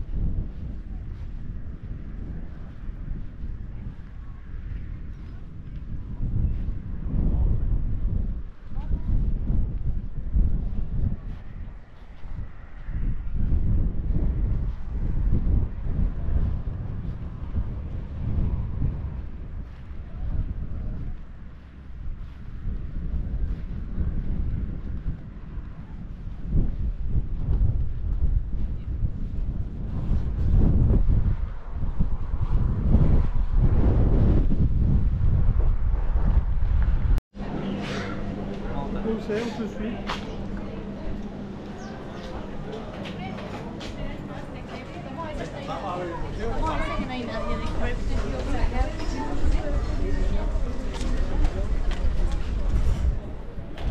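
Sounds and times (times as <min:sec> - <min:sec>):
wind buffeting microphone: 0:00.0 - 0:53.9
people chatting: 0:08.7 - 0:09.5, 0:37.4 - 0:53.9
steady hum: 0:31.9 - 0:53.7.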